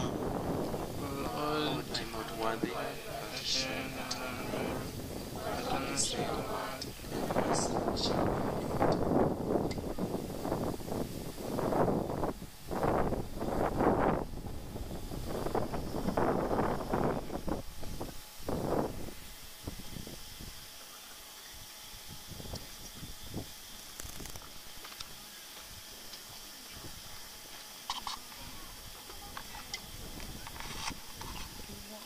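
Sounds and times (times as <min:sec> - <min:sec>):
wind buffeting microphone: 0:00.0 - 0:20.7, 0:28.5 - 0:31.8
faint outdoor hiss: 0:00.0 - 0:32.0.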